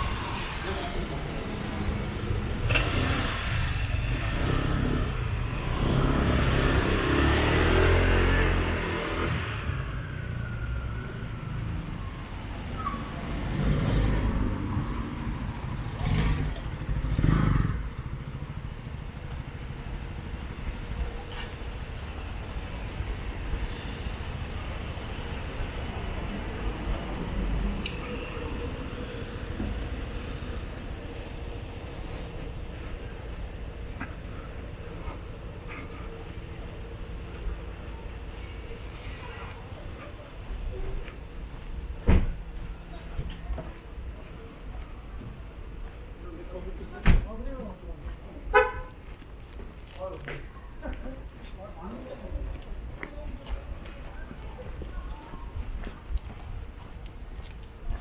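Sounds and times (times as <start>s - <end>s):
cars driving past: 0.0s - 11.0s, 11.9s - 19.4s
background traffic: 0.0s - 58.0s.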